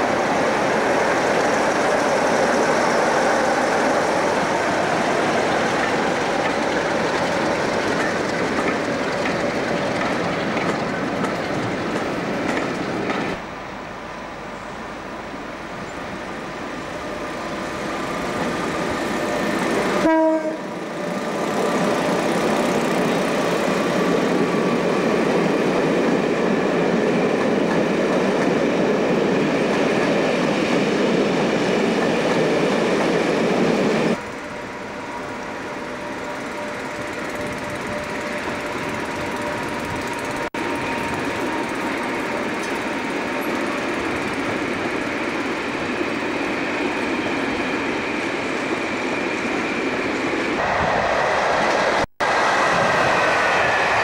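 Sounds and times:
train wheels rolling over rails: 0.0 - 13.5, 15.7 - 54.0
passing train rumble: 0.0 - 54.0
train horn blast: 19.9 - 20.8.

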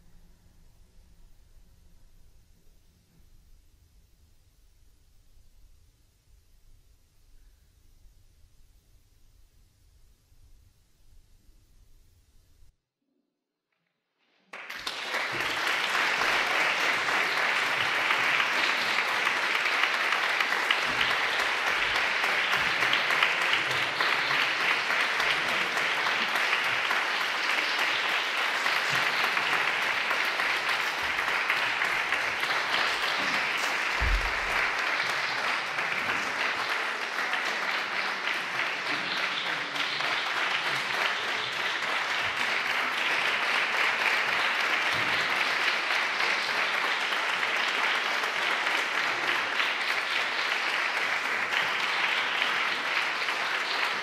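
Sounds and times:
audience applauding: 14.5 - 54.0.

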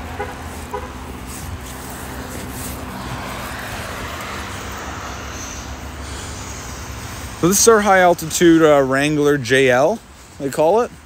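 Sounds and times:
car engine idling: 0.0 - 9.4
traffic: 0.0 - 11.0
wind: 0.0 - 11.0.

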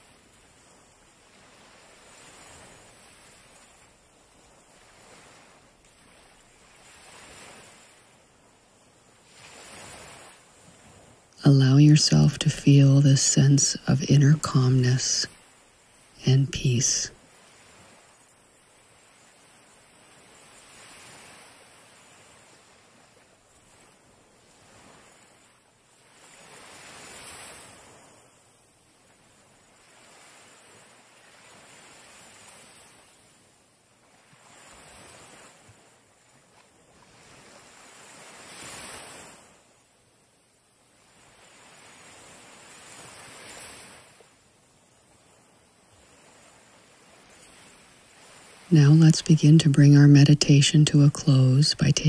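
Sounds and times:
faint sea waves washing ashore: 0.0 - 52.0.

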